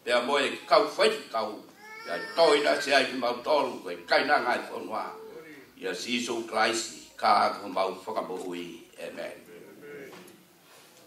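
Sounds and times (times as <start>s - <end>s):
man speaking over a microphone: 0.0s - 10.1s.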